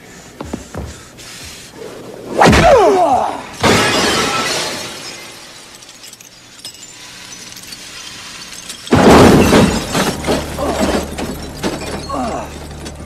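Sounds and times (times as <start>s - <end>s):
window glass shattering: 3.6s - 13.0s
body crashing onto car roof: 8.9s - 12.2s.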